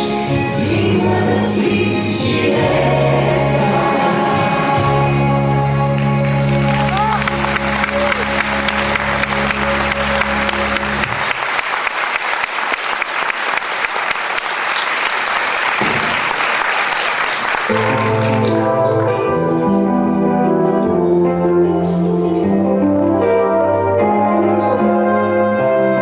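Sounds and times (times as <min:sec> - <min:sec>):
instrumental music: 0:00.0 - 0:11.4, 0:17.7 - 0:26.0
audience applause: 0:05.9 - 0:18.8.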